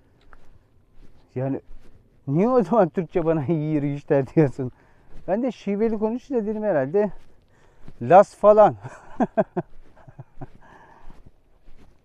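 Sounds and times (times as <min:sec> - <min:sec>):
footsteps on stony dirt trail: 0:00.0 - 0:12.0.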